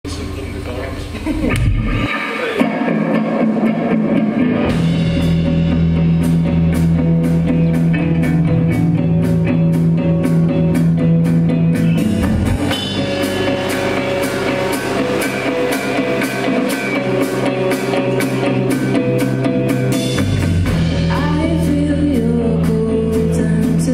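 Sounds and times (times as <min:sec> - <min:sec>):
drum kit beat: 0:00.0 - 0:23.9
rock band playing: 0:00.0 - 0:23.9.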